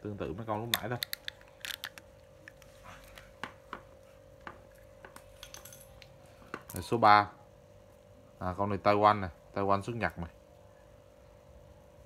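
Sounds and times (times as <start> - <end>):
faint steady hum: 0.0 - 12.0
fishing reel clicking when handled: 0.7 - 2.0.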